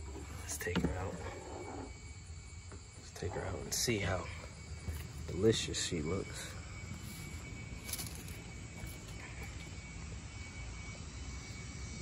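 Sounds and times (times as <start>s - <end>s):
faint high-pitched tone: 3.0s - 12.0s.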